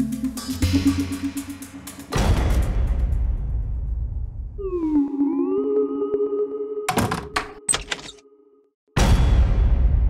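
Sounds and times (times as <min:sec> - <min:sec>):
background music: 0:00.0 - 0:04.0.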